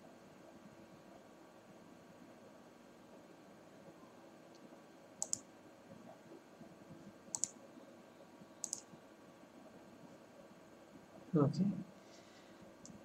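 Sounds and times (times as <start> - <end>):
faint room noise: 0.0 - 13.0
computer mouse clicking: 5.2 - 5.5, 7.3 - 7.6, 8.6 - 8.9, 12.8 - 13.0.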